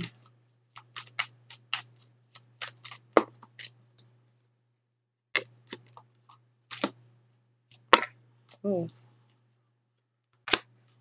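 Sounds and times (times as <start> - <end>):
cards being shuffled: 0.0 - 3.8.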